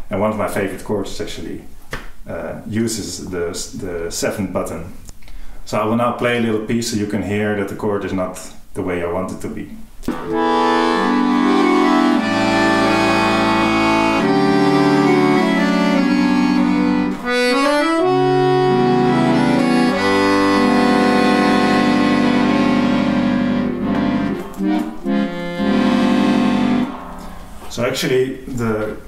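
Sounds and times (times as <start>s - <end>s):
accordion playing chords: 10.1s - 27.9s.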